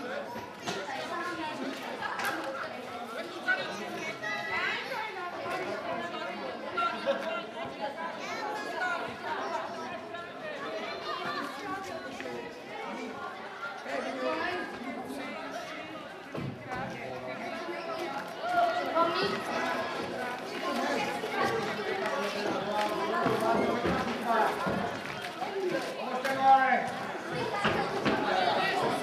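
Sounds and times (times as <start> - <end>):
spectators chattering and calling: 0.0 - 29.0.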